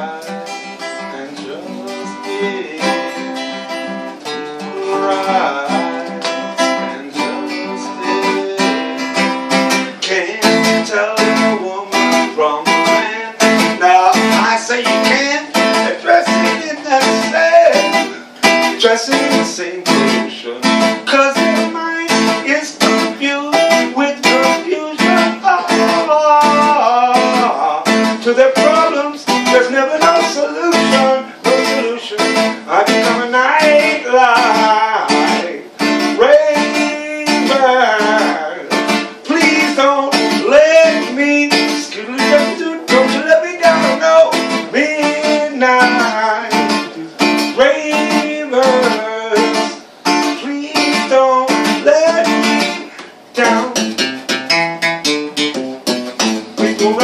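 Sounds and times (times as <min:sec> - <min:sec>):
man singing: 0:00.0 - 0:54.1, 0:56.2 - 0:57.0
acoustic guitar strumming: 0:00.0 - 0:57.0.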